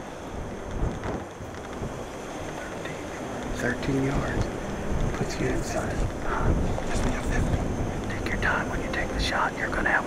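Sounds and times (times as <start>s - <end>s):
wind buffeting microphone: 0.0s - 2.5s, 3.1s - 9.5s.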